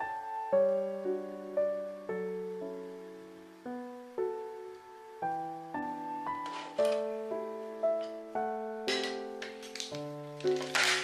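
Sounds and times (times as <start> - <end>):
gentle piano music: 0.0 - 11.0
faint handling noise: 6.4 - 7.2.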